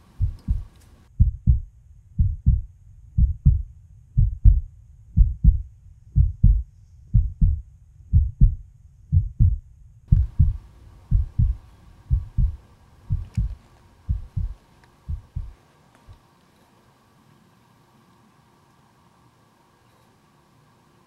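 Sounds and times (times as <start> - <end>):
heartbeat thumps: 0.2 - 16.2.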